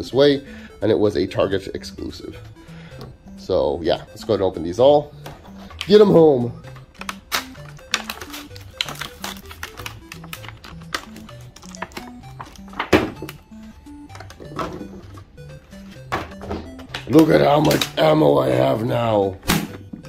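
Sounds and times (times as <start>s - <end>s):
background music with bass line: 0.0s - 20.0s
plastic blister packs crackling: 5.6s - 13.4s.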